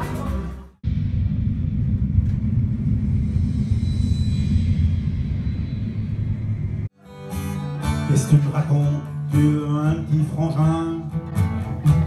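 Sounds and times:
loud low rumble: 0.8s - 6.9s.

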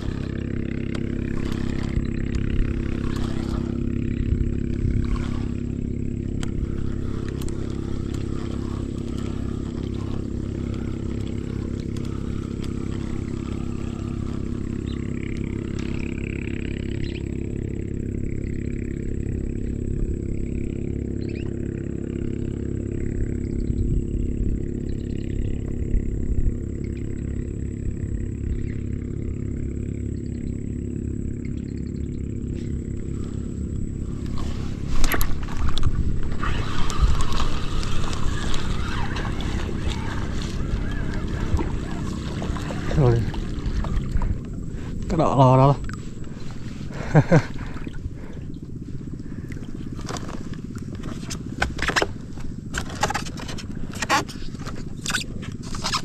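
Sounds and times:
motor running steadily: 0.0s - 56.0s.

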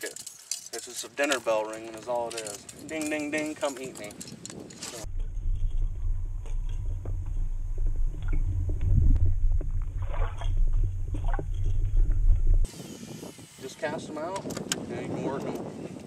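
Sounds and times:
underwater low rumble: 5.0s - 12.7s.

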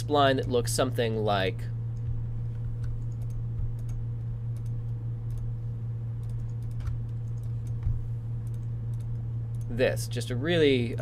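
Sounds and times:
low electrical hum: 0.0s - 11.0s
computer mouse clicking: 2.0s - 5.5s, 6.2s - 9.7s.

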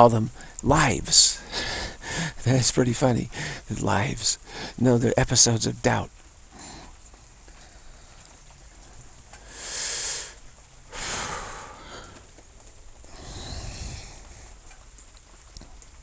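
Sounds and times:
person breathing: 1.4s - 2.4s, 3.3s - 3.7s, 4.4s - 4.8s, 9.4s - 12.4s, 13.1s - 14.6s.

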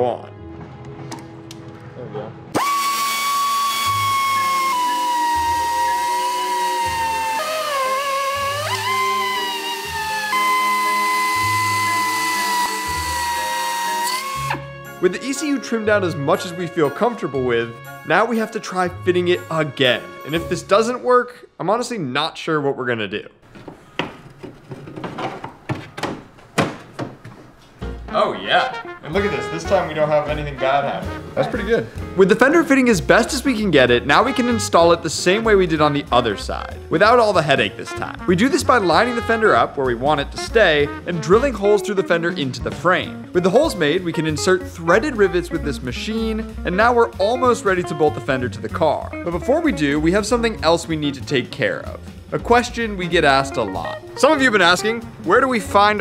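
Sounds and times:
air belt sander whining: 2.6s - 14.7s
fender knocking against car bodywork: 23.5s - 27.4s.

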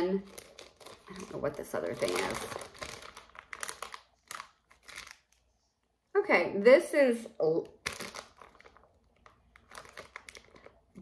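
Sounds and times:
plastic bag crinkling: 0.0s - 5.5s, 7.6s - 11.0s.

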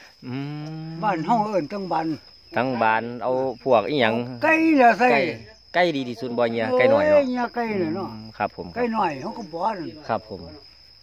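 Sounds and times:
insects droning: 0.0s - 11.0s
elderly man speaking: 0.8s - 10.6s.

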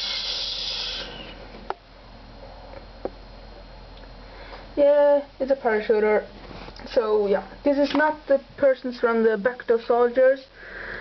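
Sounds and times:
mouth hissing sound effect: 0.0s - 1.4s.

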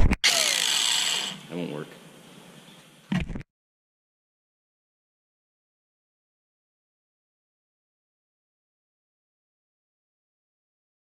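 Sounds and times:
camera bump: 3.1s - 3.4s.

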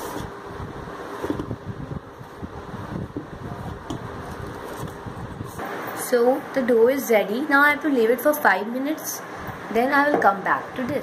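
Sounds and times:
fan-like whir: 0.0s - 11.0s.

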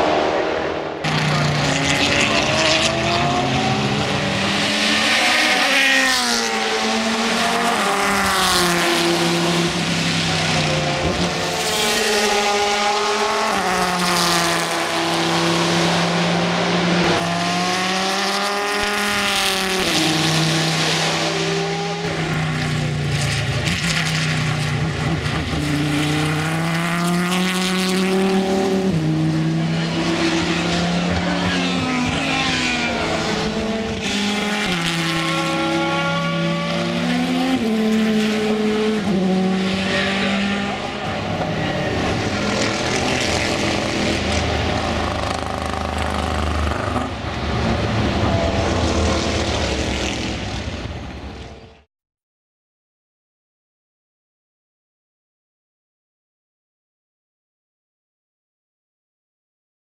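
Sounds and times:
race car engines revving: 0.0s - 51.9s.

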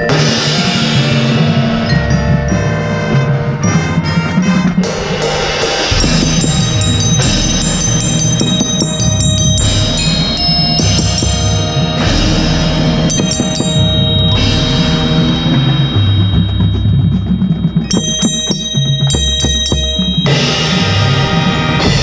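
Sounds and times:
drums: 0.0s - 22.0s
marching band music: 0.0s - 22.0s
cymbals struck with sticks: 4.4s - 22.0s.

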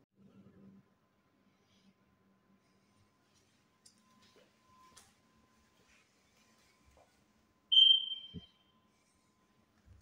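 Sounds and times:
high-pitched beep: 7.7s - 8.6s.

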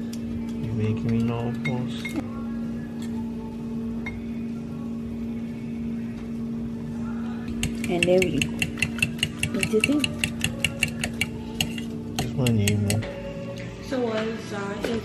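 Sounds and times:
fork beating eggs in glass bowl: 7.5s - 13.0s.

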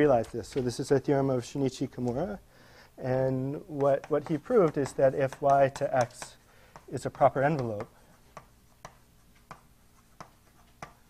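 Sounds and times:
chalk tapping on blackboard: 3.1s - 11.0s.

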